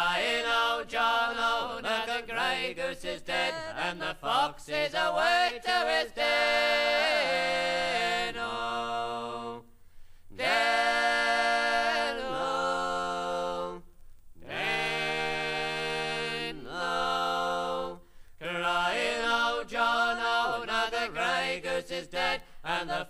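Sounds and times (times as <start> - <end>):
unaccompanied harmony singing: 0.0 - 9.7, 10.3 - 23.0
singers breathing: 9.7 - 10.3, 18.0 - 18.4, 22.4 - 22.7.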